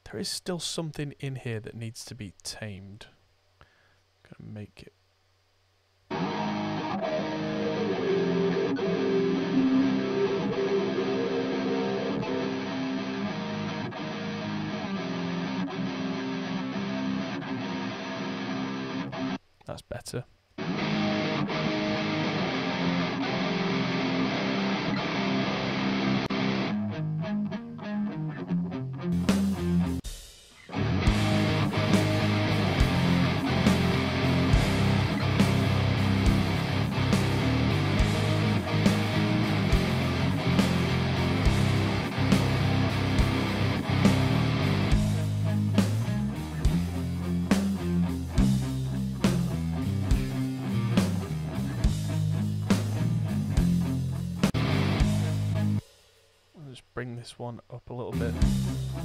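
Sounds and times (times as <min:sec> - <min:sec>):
electric guitars: 0:06.1 - 0:19.4, 0:20.6 - 0:30.0, 0:30.6 - 0:55.8.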